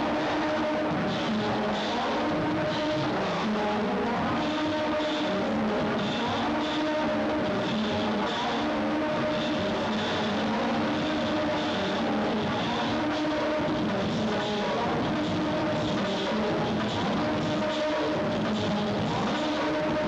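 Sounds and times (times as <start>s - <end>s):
experimental electronic music: 0.0s - 20.0s.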